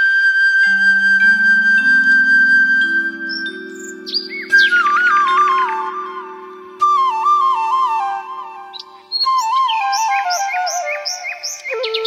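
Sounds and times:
flute music: 0.0s - 12.0s
birds chirping: 1.2s - 12.0s.

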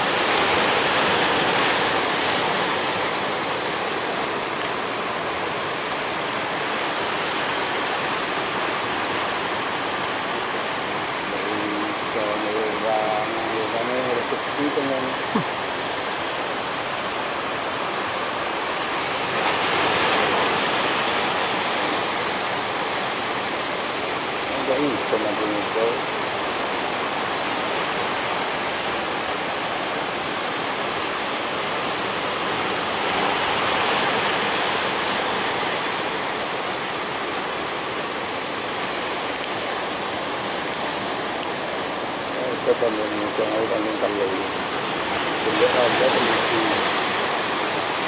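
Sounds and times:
ocean waves crashing: 0.0s - 48.0s.

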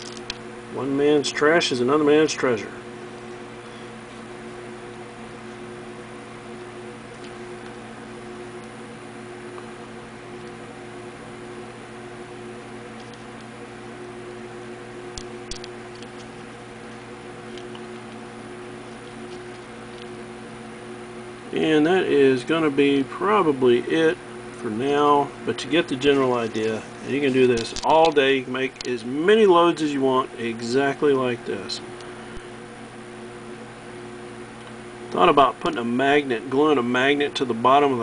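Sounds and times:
machine hum: 0.0s - 38.0s
faint small clicks: 13.0s - 13.5s.

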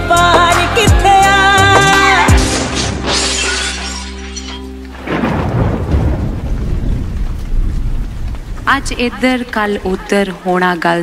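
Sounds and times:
shattering glass: 2.5s - 5.3s
heavy rain: 5.0s - 10.9s
low rumbling: 5.0s - 10.9s
heavy low boom: 5.1s - 10.0s.

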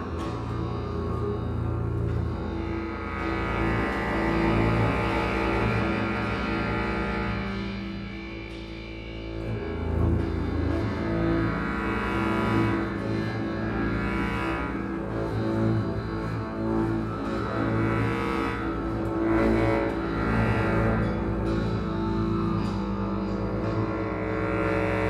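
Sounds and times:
bass clarinet: 0.0s - 25.0s
bowed double bass: 0.0s - 25.0s
harp: 0.0s - 25.0s.

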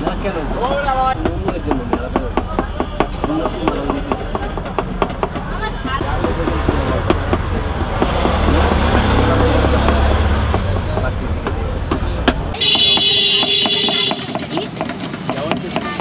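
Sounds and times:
street traffic rumble: 0.0s - 16.0s
knife tapping on plastic cutting board: 1.2s - 5.5s, 6.1s - 16.0s
vehicle passing: 5.4s - 12.6s.

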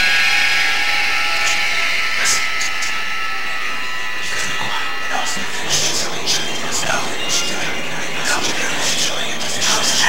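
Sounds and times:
shrill cries or whistles: 0.0s - 10.0s.

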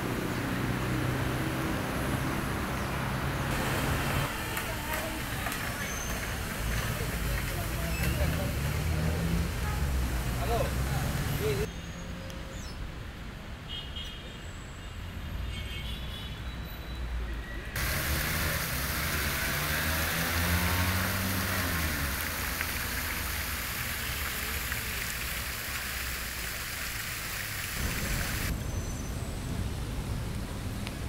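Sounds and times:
distant traffic rumble: 0.0s - 11.7s, 17.8s - 31.0s
fountain water splashing: 3.5s - 11.7s, 17.8s - 28.5s.

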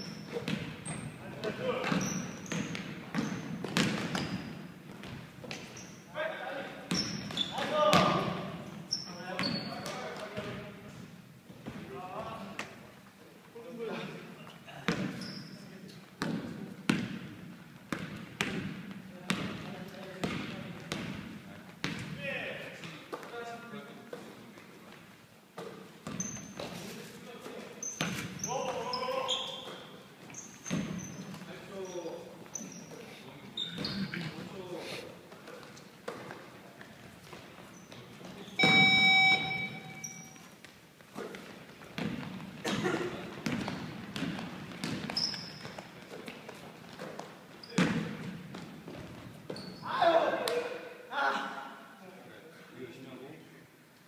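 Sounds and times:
sneakers squeaking: 0.0s - 6.2s, 6.8s - 12.9s, 14.4s - 22.2s, 25.6s - 34.6s, 35.3s - 50.1s
basketball dribbling: 1.9s - 5.7s, 41.8s - 42.6s, 43.4s - 49.7s
loud buzzer: 38.6s - 40.2s.

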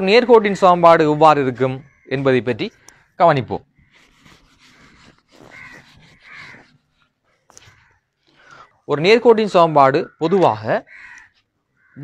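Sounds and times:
whiteboard eraser rubbing: 3.8s - 7.1s.

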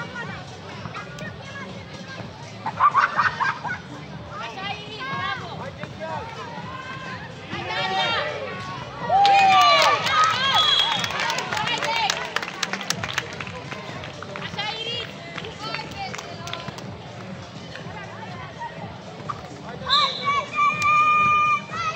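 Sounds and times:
running feet on plastic court: 4.4s - 21.9s
girls shouting and calling: 19.8s - 21.9s.

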